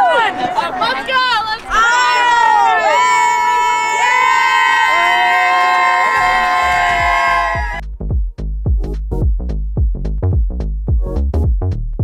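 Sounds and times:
women cheering and whooping: 1.7s - 7.8s
electronic music with drum-machine beat: 7.0s - 12.0s.

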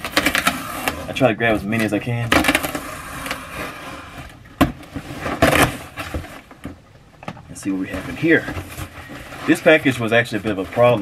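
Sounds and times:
tape and cardboard tearing: 0.0s - 6.7s.

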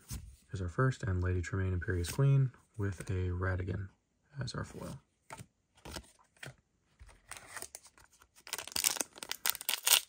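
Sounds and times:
foil wrapper crinkling and tearing: 8.4s - 10.0s.

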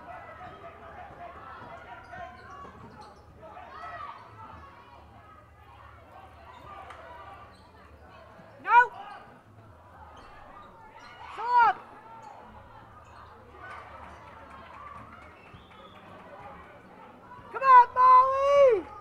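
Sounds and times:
crowd murmur: 0.0s - 19.0s
sneakers squeaking on court floor: 0.3s - 3.5s, 6.4s - 8.5s, 10.0s - 11.3s.

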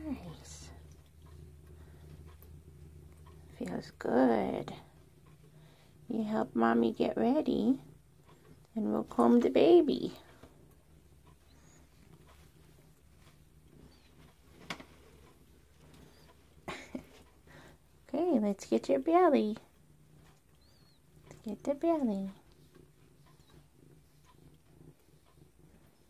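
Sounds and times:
cat purring: 0.0s - 26.0s.

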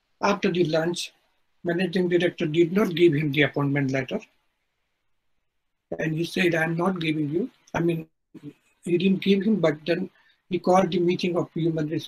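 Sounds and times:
man speaking: 0.2s - 4.4s, 5.9s - 12.0s.

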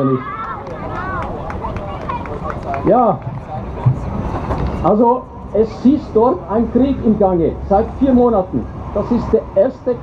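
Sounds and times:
faint crowd voices: 0.0s - 10.0s
low city rumble: 0.0s - 10.0s
man speaking: 4.8s - 10.0s.

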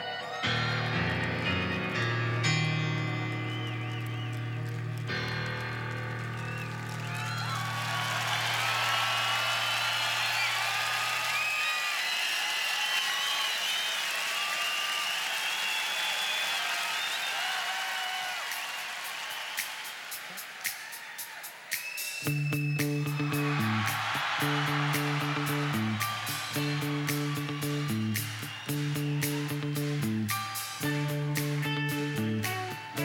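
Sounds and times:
crowd cheering and applauding: 0.0s - 33.0s
piano chords ringing out: 0.4s - 8.6s.

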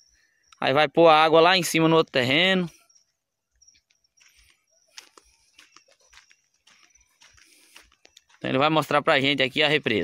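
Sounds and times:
footsteps on sandy dirt: 2.3s - 10.0s.

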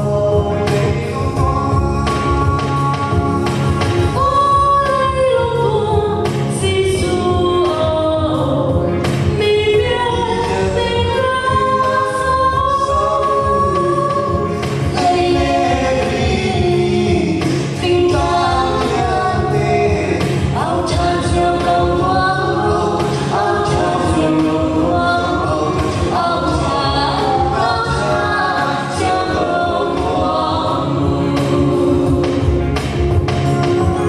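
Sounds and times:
musical accompaniment: 0.0s - 34.0s
choir singing a christmas song: 9.8s - 32.9s.

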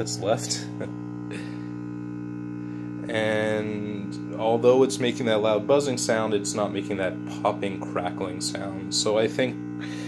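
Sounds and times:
loud mains hum from speaker: 0.0s - 10.0s.

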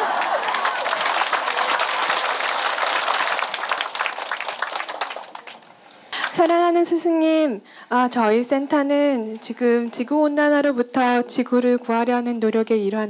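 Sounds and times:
audience laughing: 0.0s - 2.5s
audience clapping: 0.0s - 6.6s.

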